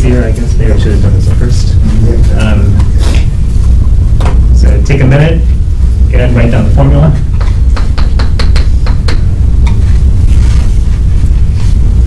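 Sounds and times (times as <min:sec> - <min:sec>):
low rumble: 0:00.0 - 0:12.0
chalk tapping on blackboard: 0:07.4 - 0:09.8.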